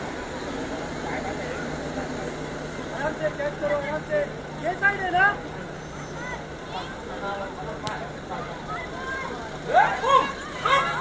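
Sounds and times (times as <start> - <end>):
people shouting short calls: 8.7 - 11.0.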